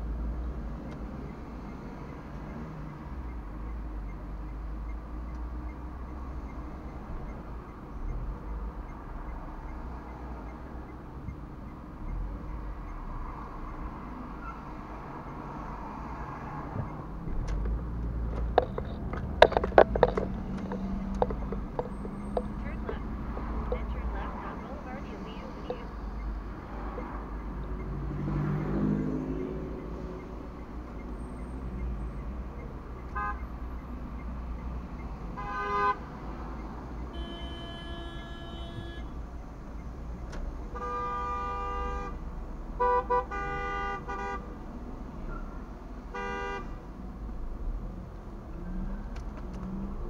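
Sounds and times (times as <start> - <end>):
engine and road noise hum: 0.0 - 50.0
car horns honking: 18.5 - 27.4, 33.0 - 34.0, 35.3 - 39.3, 40.6 - 44.6, 46.1 - 46.8.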